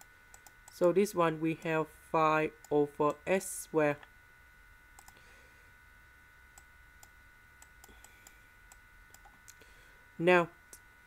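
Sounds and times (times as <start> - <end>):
faint electrical whine: 0.0 - 11.0.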